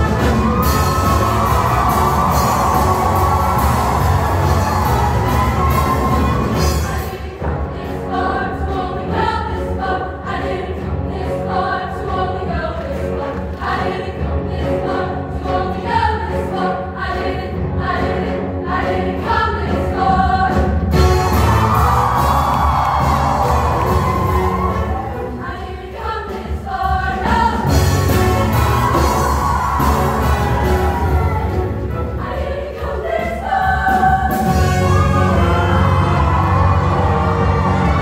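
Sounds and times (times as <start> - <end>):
live band playing: 0.0 - 7.1, 20.6 - 25.4, 27.6 - 32.2, 33.8 - 38.0
women's choir singing in harmony: 0.0 - 38.0.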